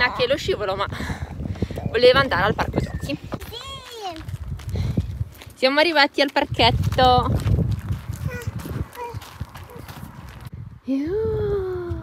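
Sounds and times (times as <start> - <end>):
footsteps on gravel: 3.2 - 10.5.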